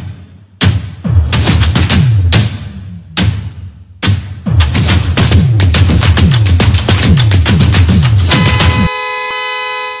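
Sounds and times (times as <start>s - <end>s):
electronic music with kick drum: 0.0s - 9.0s
held horn blast: 8.3s - 10.0s.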